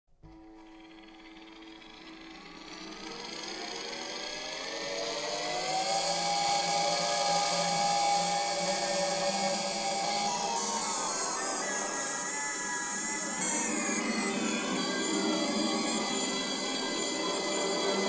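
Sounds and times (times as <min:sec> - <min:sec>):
electronic drone music: 0:00.9 - 0:18.0.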